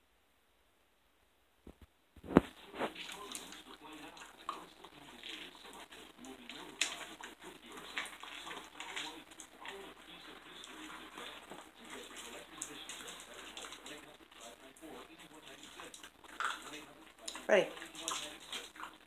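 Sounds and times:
puppy crunching kibble: 2.3 - 19.0.

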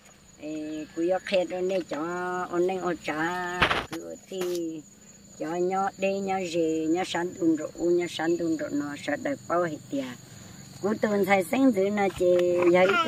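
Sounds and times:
high-pitched insect drone: 0.0 - 13.0
woman speaking: 0.4 - 13.0.

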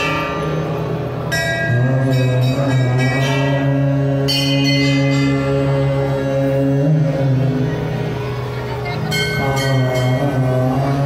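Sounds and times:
harmonium holding low notes: 0.0 - 11.0
brass bell ringing: 9.1 - 11.0.

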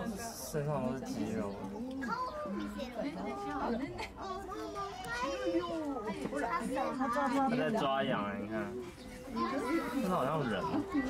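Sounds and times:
overlapping chatter of people: 0.0 - 11.0
children's voices: 1.6 - 7.7, 8.8 - 11.0.

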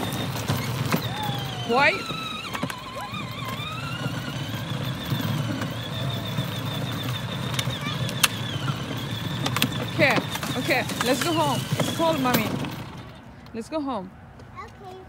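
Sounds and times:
electric motor whine: 0.0 - 13.2
plastic wheels rolling on concrete: 0.0 - 13.3.

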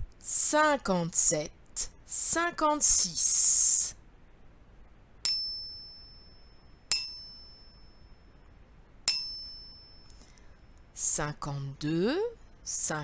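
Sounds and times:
high bell-like chime dings: 5.2 - 8.4, 9.1 - 10.2.

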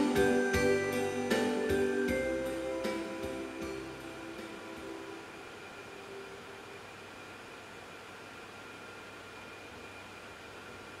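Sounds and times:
backing music held notes: 0.0 - 6.7
faint high-pitched tones: 0.0 - 7.7
steady hiss: 0.0 - 11.0.

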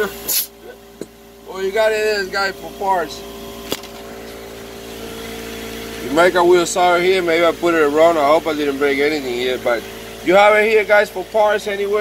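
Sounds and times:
pneumatic nailer air hiss: 0.2 - 0.6.

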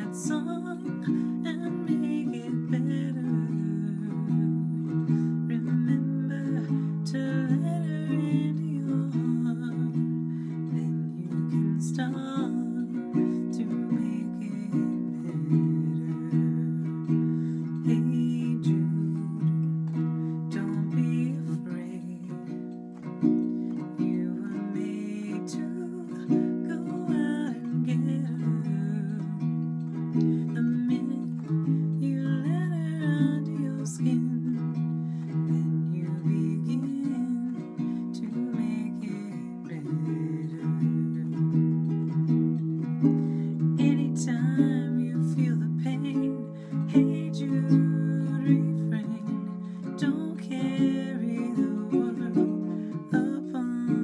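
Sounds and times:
ukulele strumming chords: 0.0 - 54.0
woman singing: 0.0 - 54.0.

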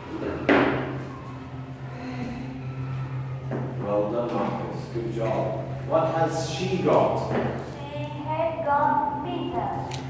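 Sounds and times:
steady low hum: 0.0 - 10.0
man talking: 3.8 - 7.4.

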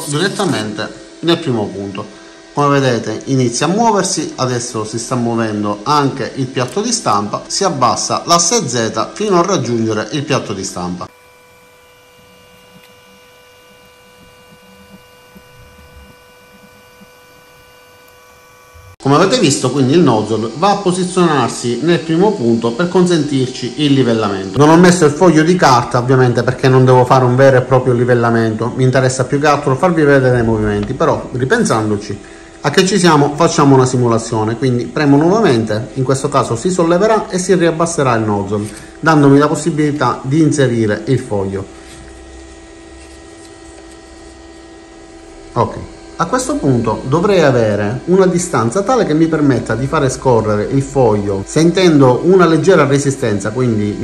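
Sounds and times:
printer motor hum with whine: 0.0 - 54.0
faint low rumbling: 14.0 - 17.7, 29.8 - 32.6.

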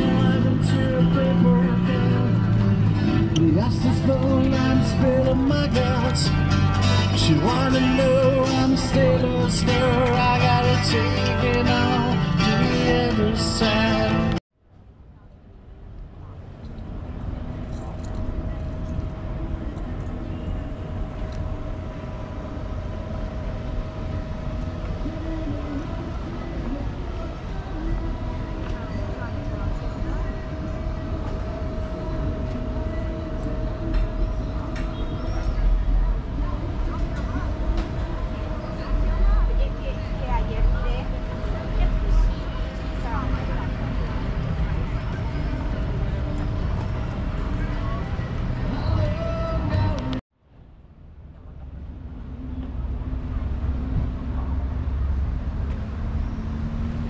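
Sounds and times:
passers-by talking: 0.0 - 50.2.

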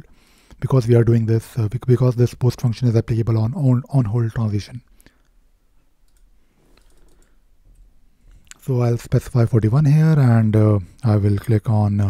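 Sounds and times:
computer mouse clicks: 6.0 - 7.9.

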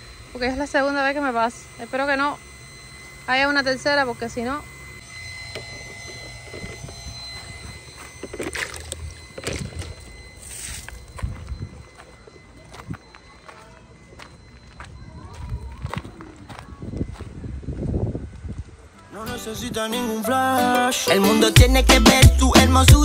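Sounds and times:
footsteps on gravel: 5.6 - 18.7.

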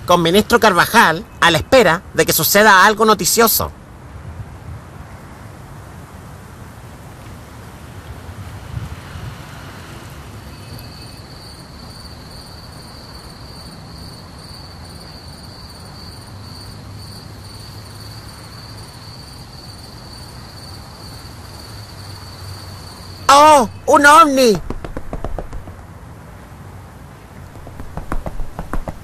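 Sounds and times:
crickets chirping: 0.0 - 3.9, 9.0 - 29.0
faint low outdoor hum: 0.0 - 29.0.

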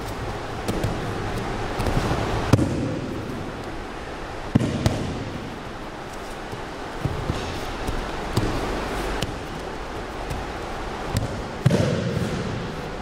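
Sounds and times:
bodies thudding on gym mat: 0.6 - 3.2, 6.4 - 12.7.

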